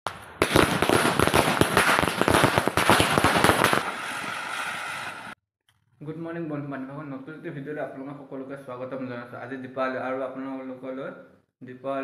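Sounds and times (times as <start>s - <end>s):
fireworks crackling: 0.1s - 5.4s.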